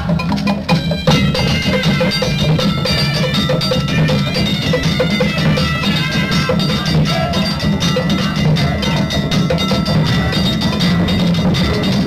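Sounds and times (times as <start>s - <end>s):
drums: 0.0s - 12.0s
metal bells struck: 0.0s - 12.0s.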